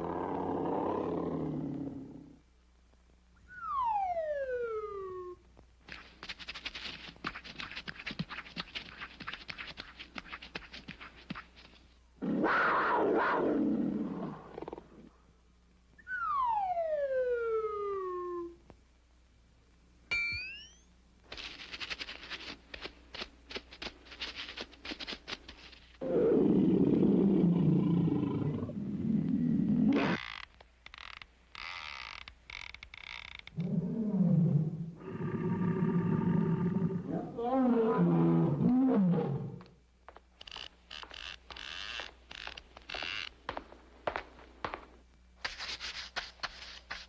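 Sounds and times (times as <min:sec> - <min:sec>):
cartoon lion roaring: 0:00.0 - 0:02.4, 0:12.2 - 0:15.0, 0:26.0 - 0:30.2, 0:33.6 - 0:39.7
cartoon descending whistle tone: 0:03.5 - 0:05.0, 0:16.0 - 0:18.6.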